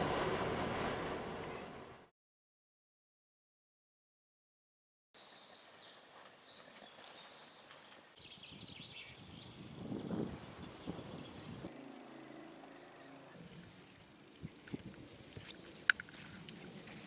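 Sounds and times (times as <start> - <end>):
outdoor background noise: 0.0 - 2.1, 5.2 - 17.0
wild birds chirping: 5.2 - 17.0.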